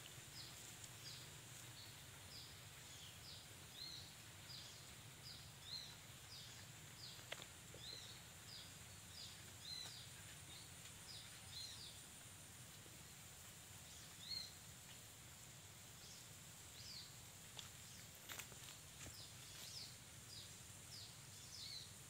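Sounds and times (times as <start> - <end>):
small bird chirping: 0.3 - 12.1, 13.8 - 14.6, 16.0 - 22.0.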